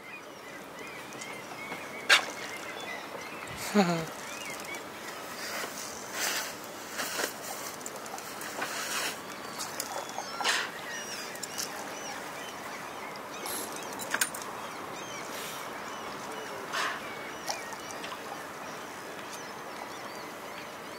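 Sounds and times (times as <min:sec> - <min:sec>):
water splashing and lapping: 0:00.6 - 0:19.9.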